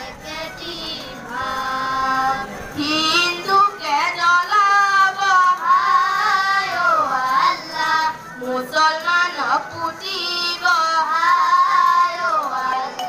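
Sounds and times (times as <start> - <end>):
boy singing into a microphone: 0.0 - 13.0.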